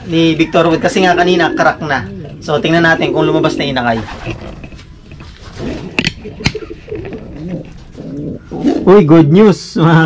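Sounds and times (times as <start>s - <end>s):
pigeons cooing: 0.0s - 9.4s.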